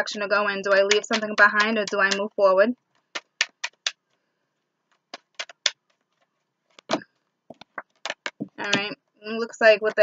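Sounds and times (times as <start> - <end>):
cards being shuffled: 0.8 - 2.2, 2.9 - 4.1, 4.8 - 8.9.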